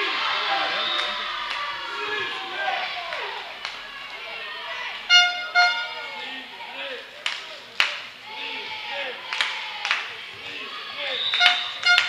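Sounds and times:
voices echoing in sports hall: 0.0s - 12.0s
short horn blasts: 5.0s - 6.1s, 11.3s - 12.0s.

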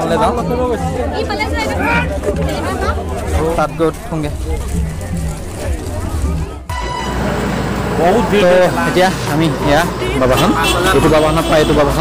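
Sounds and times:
roadside crowd noise: 0.0s - 12.0s
traffic rumble: 0.0s - 12.0s
vehicle horn toot: 10.2s - 12.0s.

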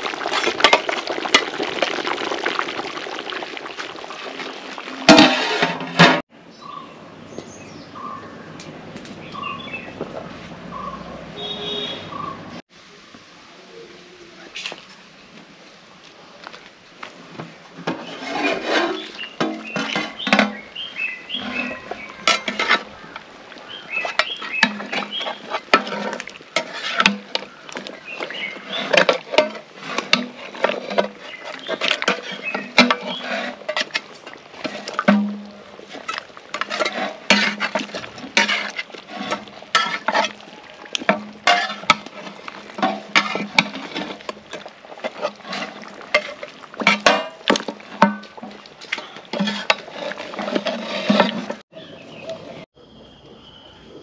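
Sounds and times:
metal ladle scraping a metal pot: 5.1s - 6.2s, 17.8s - 23.2s, 23.9s - 51.6s.

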